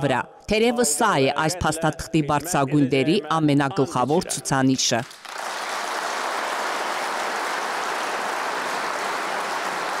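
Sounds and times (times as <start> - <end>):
audience applauding: 5.1 - 10.0.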